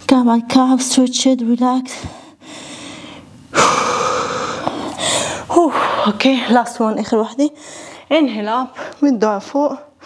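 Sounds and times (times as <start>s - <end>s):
woman breathing hard: 2.0s - 6.2s, 7.6s - 8.1s.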